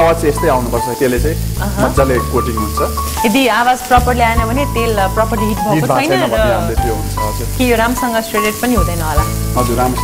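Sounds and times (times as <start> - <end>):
background music with singing: 0.0 - 10.0
chicken sizzling in a frying pan: 0.0 - 10.0.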